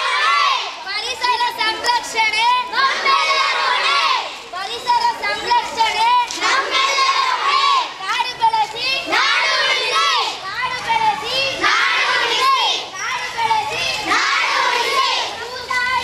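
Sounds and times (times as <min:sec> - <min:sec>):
children shouting slogans: 0:00.0 - 0:16.0.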